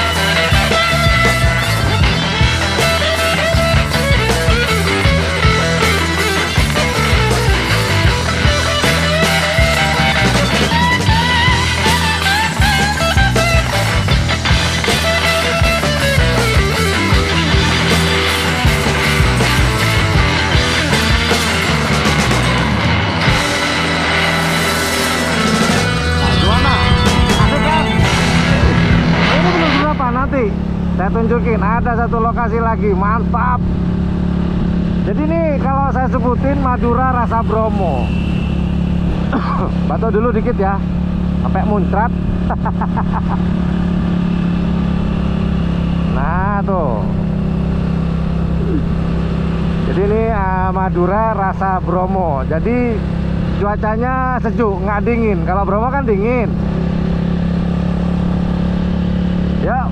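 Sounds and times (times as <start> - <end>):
motorcycle engine running: 0.0 - 59.9
rushing riding noise: 0.0 - 59.9.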